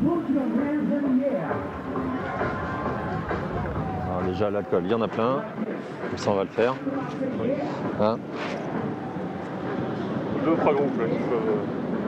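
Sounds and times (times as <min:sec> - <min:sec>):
outdoor crowd babble: 0:00.0 - 0:12.0.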